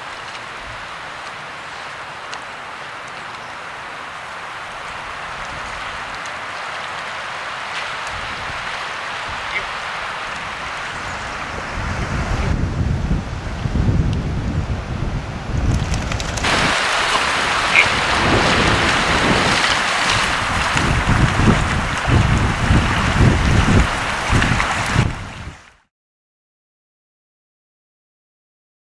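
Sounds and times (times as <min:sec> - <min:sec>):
wind rumbling on microphone: 0:04.6 - 0:07.0, 0:07.7 - 0:25.8
water splashing from wading: 0:15.7 - 0:25.6.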